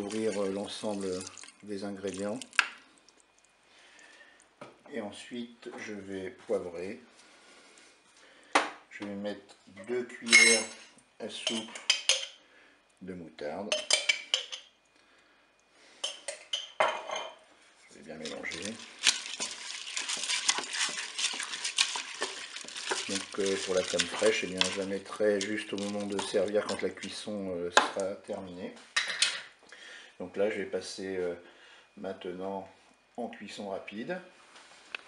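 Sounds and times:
faint room hiss: 0:00.0 - 0:35.0
wooden spatula scraping a pot: 0:18.2 - 0:27.1.

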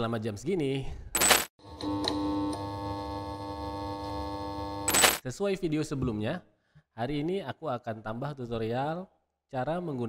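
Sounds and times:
held electronic chord: 0:01.6 - 0:05.0.

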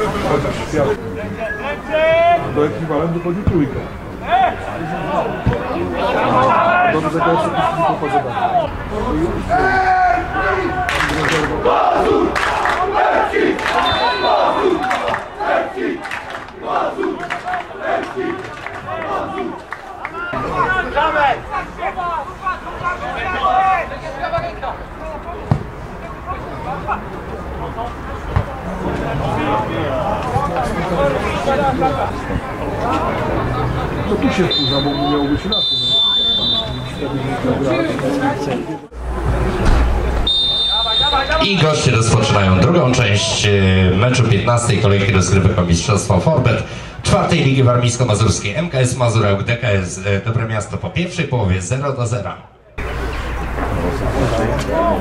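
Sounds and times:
players and spectators shouting: 0:01.0 - 0:45.7, 0:52.7 - 0:55.0
crowd of men shouting: 0:04.2 - 0:27.1
referee's whistle: 0:13.8 - 0:14.8, 0:34.4 - 0:37.2, 0:40.2 - 0:41.6.

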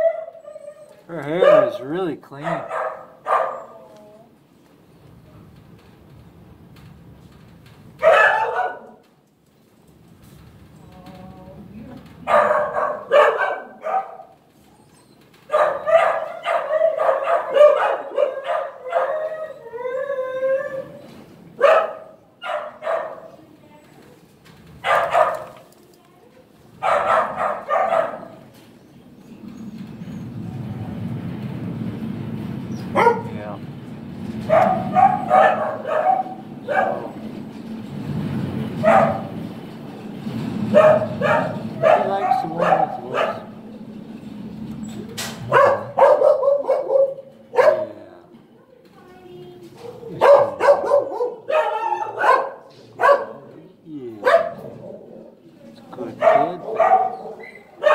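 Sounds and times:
dogs barking: 0:00.0 - 0:03.9, 0:08.0 - 0:09.0, 0:12.2 - 0:14.5, 0:15.4 - 0:19.7, 0:21.5 - 0:23.4, 0:24.8 - 0:25.7, 0:26.8 - 0:28.5, 0:32.7 - 0:33.6, 0:34.4 - 0:37.5, 0:38.8 - 0:39.6, 0:40.6 - 0:43.8, 0:45.4 - 0:48.1, 0:49.8 - 0:53.6, 0:54.2 - 0:55.4, 0:56.0 - 0:57.9
dog howling: 0:15.5 - 0:21.1, 0:34.5 - 0:37.3, 0:40.7 - 0:43.5, 0:50.0 - 0:53.3
low rumbling noise: 0:29.4 - 0:46.0.

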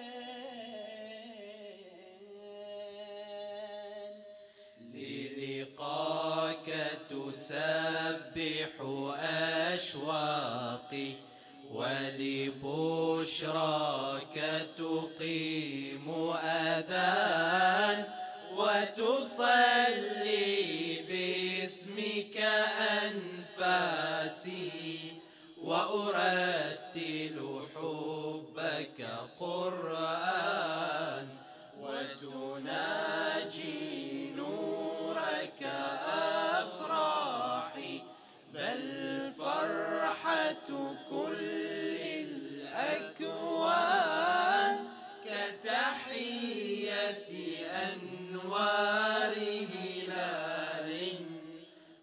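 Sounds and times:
men singing religious chant: 0:00.0 - 0:01.8, 0:04.8 - 0:51.8.

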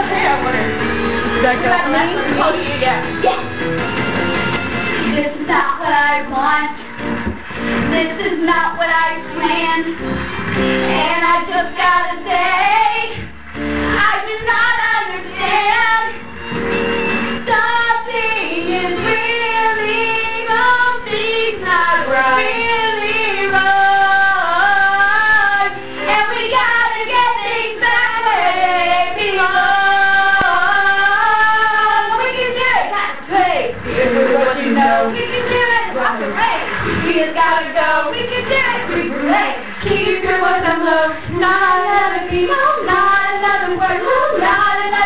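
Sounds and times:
girls singing karaoke: 0:00.0 - 0:03.5, 0:04.7 - 0:45.0
pop backing track: 0:00.0 - 0:45.0.

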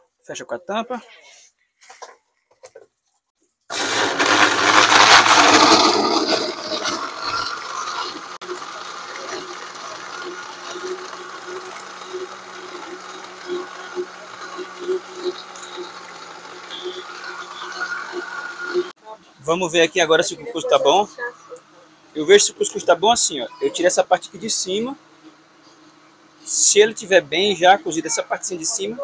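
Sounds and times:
blender running: 0:03.7 - 0:19.0.

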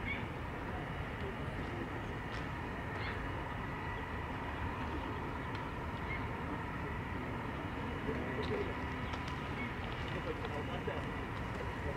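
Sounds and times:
faint bird calls: 0:00.0 - 0:00.4, 0:02.8 - 0:10.0
outdoor background noise: 0:00.0 - 0:11.9.

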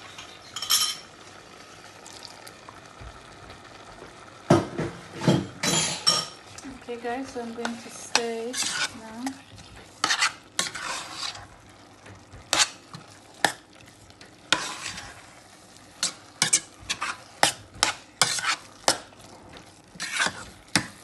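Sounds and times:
spoon scraping a pot: 0:07.6 - 0:11.6, 0:12.4 - 0:13.6, 0:14.5 - 0:21.0
metal spoon stirring thick filling: 0:07.6 - 0:21.0.

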